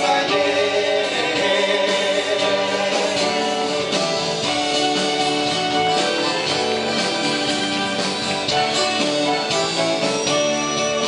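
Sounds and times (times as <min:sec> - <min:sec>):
voices singing together: 0:00.0 - 0:04.3
live band with acoustic guitars: 0:00.0 - 0:11.0.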